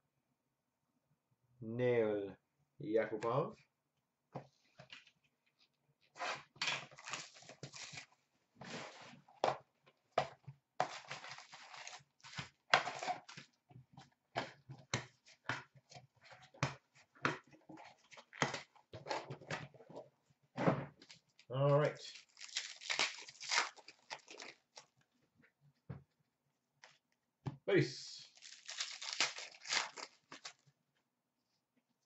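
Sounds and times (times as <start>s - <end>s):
cardboard box and packs rustling: 10.8s - 13.5s, 28.3s - 30.6s.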